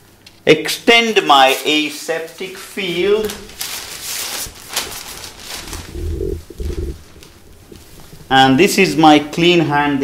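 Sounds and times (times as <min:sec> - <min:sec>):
paper drape crinkling: 0:01.4 - 0:08.2
short low muffled thuds: 0:05.9 - 0:08.2.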